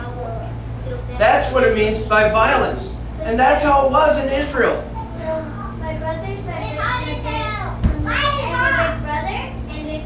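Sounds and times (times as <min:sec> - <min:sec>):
children chattering and calling out: 0:00.0 - 0:01.6, 0:04.8 - 0:10.0
steady low hum: 0:00.0 - 0:10.0.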